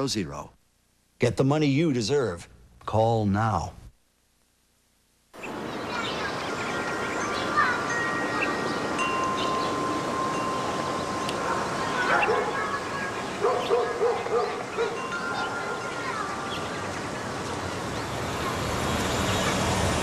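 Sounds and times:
wind chimes ringing: 6.5 - 13.3, 14.6 - 17.4.

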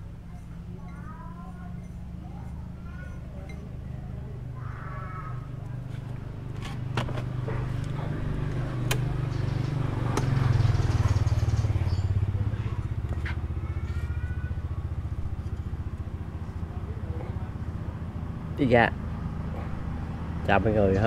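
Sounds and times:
engine idling: 0.0 - 21.0.

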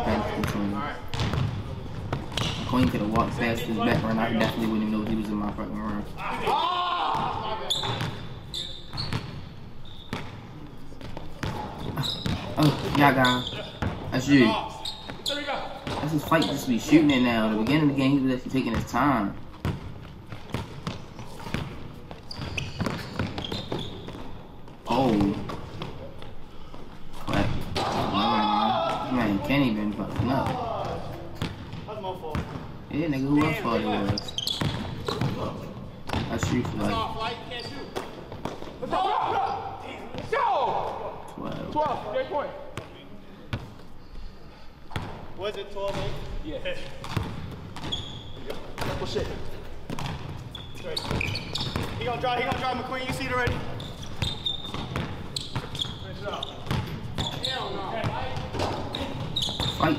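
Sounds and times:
players' voices: 0.0 - 9.1, 10.2 - 19.5, 24.7 - 47.3, 48.0 - 50.0, 50.6 - 59.9
basketball bouncing on hardwood floor: 0.4 - 4.1, 11.1 - 13.0, 19.6 - 24.3, 47.0 - 48.0, 49.9 - 50.4, 51.0 - 53.6, 54.2 - 55.9, 56.6 - 57.4
short high squeaks: 7.6 - 10.2, 22.2 - 24.1, 34.1 - 35.2, 47.8 - 48.5, 50.5 - 51.9, 53.8 - 57.8, 58.9 - 59.9.

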